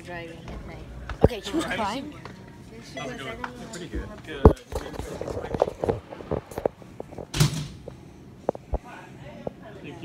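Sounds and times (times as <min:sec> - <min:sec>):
phone microphone rustling: 0:04.5 - 0:08.8.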